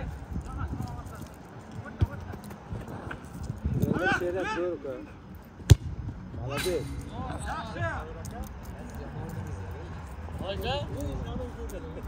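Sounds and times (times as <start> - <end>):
football kick thud: 5.6 - 6.1.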